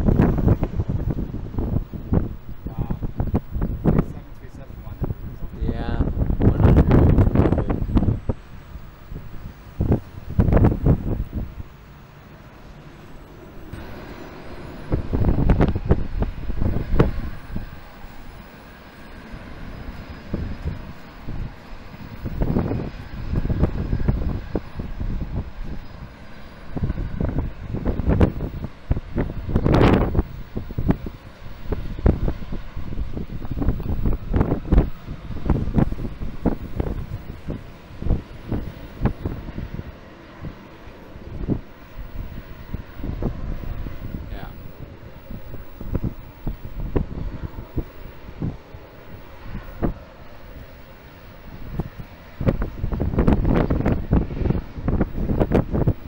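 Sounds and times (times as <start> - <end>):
distant jet engines rumbling: 0.0 - 56.0
wind gusting across microphone: 0.0 - 56.0.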